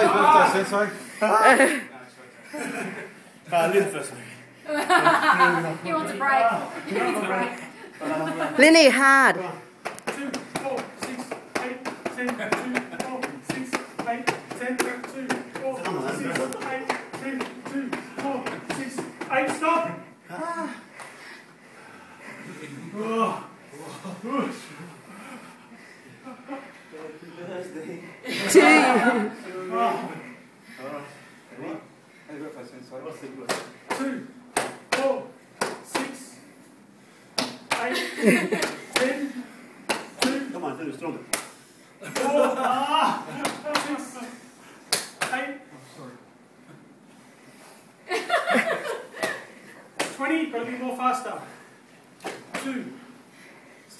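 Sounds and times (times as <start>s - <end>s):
voices and laughter: 0.0s - 3.4s, 4.6s - 9.0s, 27.9s - 30.2s, 37.8s - 39.6s, 42.0s - 43.8s, 48.0s - 49.7s
person exclaiming and laughing: 42.1s - 43.8s.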